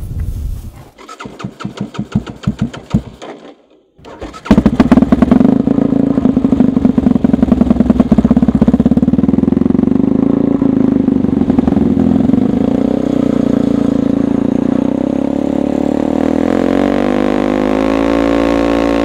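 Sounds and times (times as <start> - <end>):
small engine running: 1.0 - 15.2.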